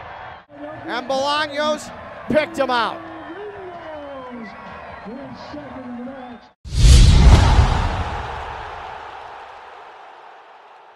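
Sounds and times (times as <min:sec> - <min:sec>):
deep boom with whoosh: 0:06.7 - 0:09.0.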